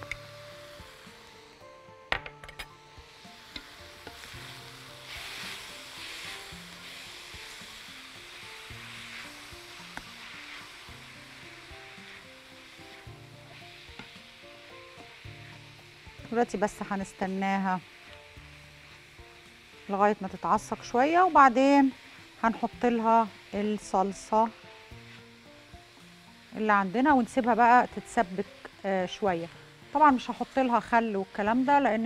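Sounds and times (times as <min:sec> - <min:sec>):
meat and onions sizzling in pan: 0:00.0 - 0:32.0
soft background music: 0:00.0 - 0:32.0
spoon stirring in pan: 0:05.0 - 0:14.2.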